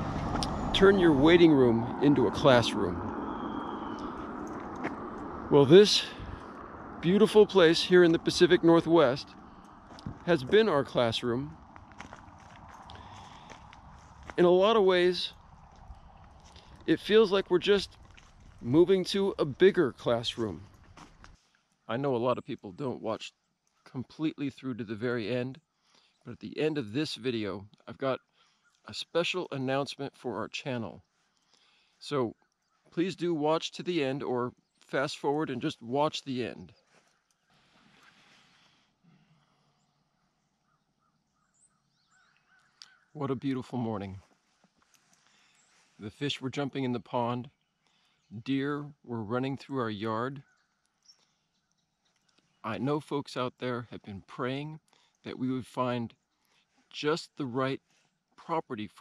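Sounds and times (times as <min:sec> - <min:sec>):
distant bird calls: 0:00.0 - 0:21.9, 0:25.6 - 0:26.3, 0:28.2 - 0:28.9, 0:31.0 - 0:33.0, 0:36.6 - 0:46.0, 0:47.4 - 0:48.4, 0:50.3 - 0:52.8
faint footsteps: 0:04.0 - 0:05.4, 0:09.2 - 0:14.7, 0:15.3 - 0:18.8, 0:20.4 - 0:21.6, 0:36.8 - 0:38.7, 0:44.1 - 0:46.0.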